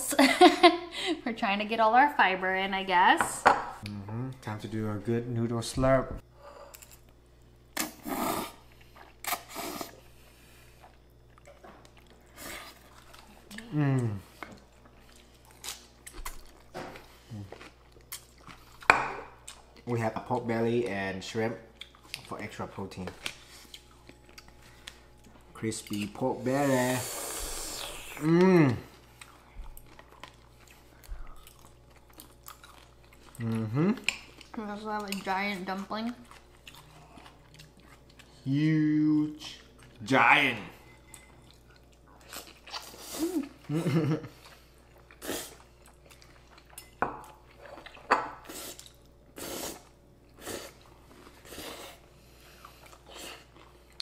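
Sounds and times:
people slurping noodles: 7.8 - 8.7, 9.3 - 10.0, 26.4 - 28.8
chewing crispy food: 10.6 - 19.9, 21.6 - 22.6, 23.3 - 26.2, 28.3 - 40.0, 41.4 - 46.8.

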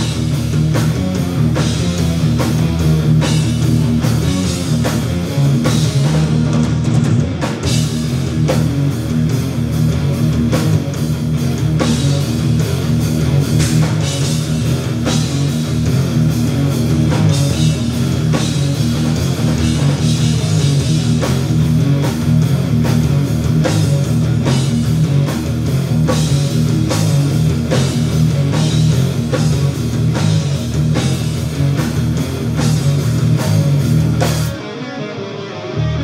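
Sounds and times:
drum kit steady beat: 0.0 - 34.6
electric guitars: 0.0 - 36.0.

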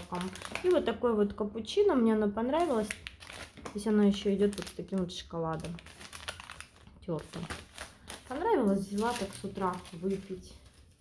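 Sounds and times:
foil sachet crinkling: 0.0 - 1.0, 2.5 - 11.0
woman's voice: 0.0 - 3.0, 3.7 - 5.8, 7.0 - 7.6, 8.3 - 10.7.

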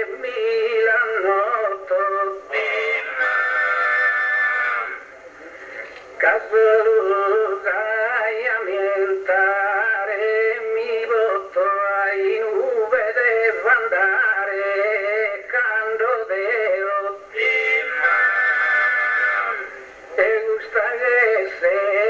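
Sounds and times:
man singing solo in high voice: 0.0 - 5.0, 6.2 - 22.0.

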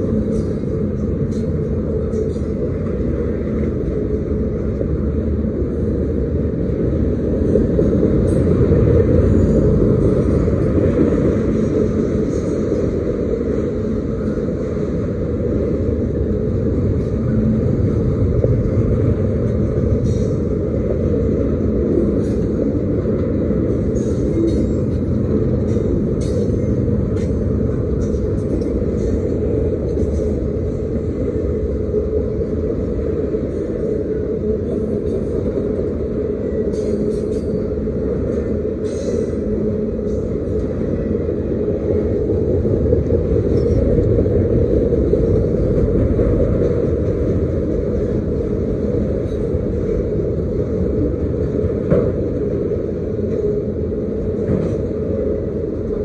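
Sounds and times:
freight train wheels rumbling on rail: 0.0 - 56.0.

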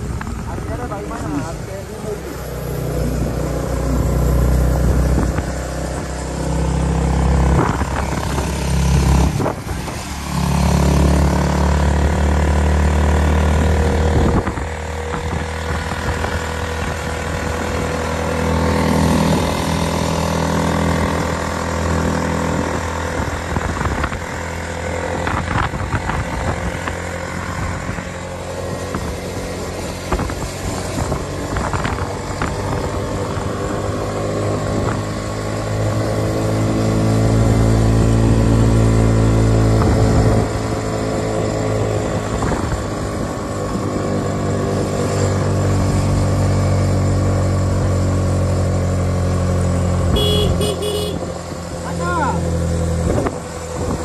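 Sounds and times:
wind rumble on microphone: 0.0 - 48.6, 52.8 - 54.0
motorcycle engine running: 0.0 - 54.0.

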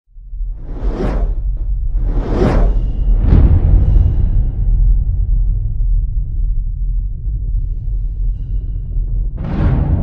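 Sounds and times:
deep low drone: 0.1 - 10.0
cinematic whoosh: 0.5 - 5.6.

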